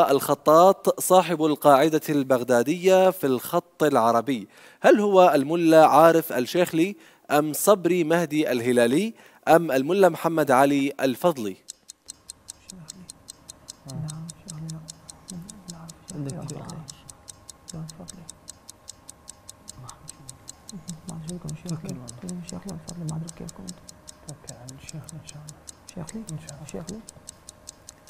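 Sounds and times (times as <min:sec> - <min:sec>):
countdown clock ticking: 0:10.7 - 0:28.0.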